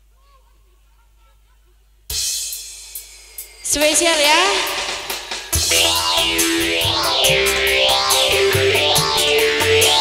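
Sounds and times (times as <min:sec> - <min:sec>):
cymbal crash: 0:02.1 - 0:10.0.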